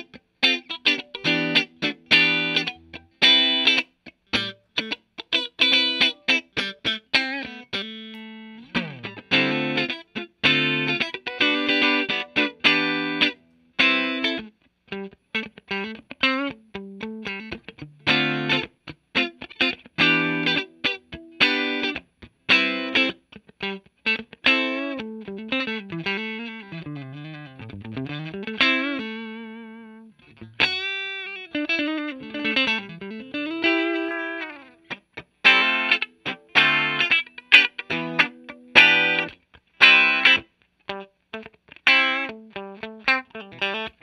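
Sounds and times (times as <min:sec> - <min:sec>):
clean electric guitar: 0:00.0 - 0:44.0.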